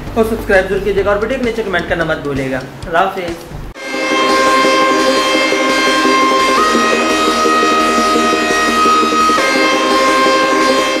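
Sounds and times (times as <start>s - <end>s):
pulsing accompaniment: 0.0s - 11.0s
held high note: 3.8s - 11.0s.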